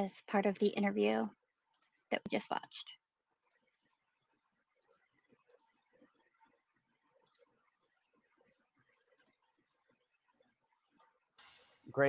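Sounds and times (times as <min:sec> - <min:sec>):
computer mouse clicks: 0:01.7 - 0:02.0, 0:03.4 - 0:03.7, 0:04.7 - 0:06.5, 0:07.1 - 0:07.6, 0:08.4 - 0:09.6.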